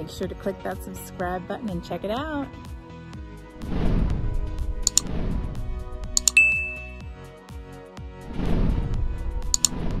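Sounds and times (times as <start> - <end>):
background music: 0.0 - 10.0
double click: 4.9 - 5.1, 6.2 - 6.8, 9.5 - 9.8
notification ding: 6.2 - 7.0.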